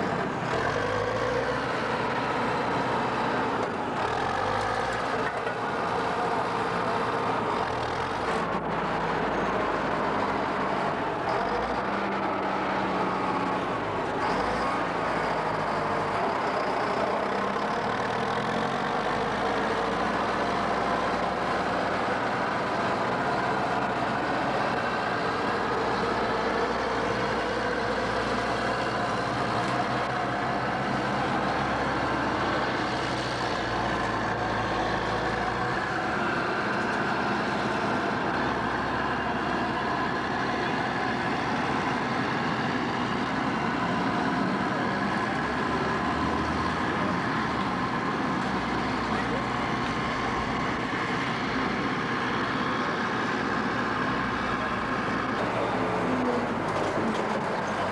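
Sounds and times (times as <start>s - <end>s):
diesel engines running: 0.0s - 57.9s.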